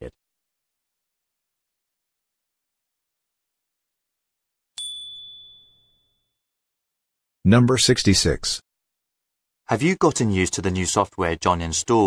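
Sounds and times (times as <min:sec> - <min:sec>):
high bell-like chime: 0:04.8 - 0:06.4.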